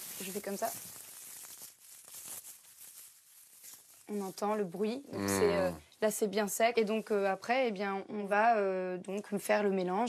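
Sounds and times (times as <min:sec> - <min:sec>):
dried leaves crackling and rustling: 0:00.0 - 0:05.8.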